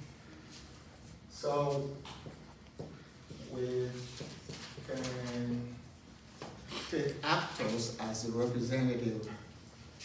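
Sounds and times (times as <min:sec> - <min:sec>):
marker scratching on whiteboard: 0:02.1 - 0:04.6.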